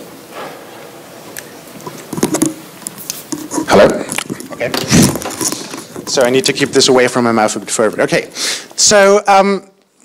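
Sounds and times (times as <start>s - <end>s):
microphone handling clicks and rustling: 1.8s - 8.2s.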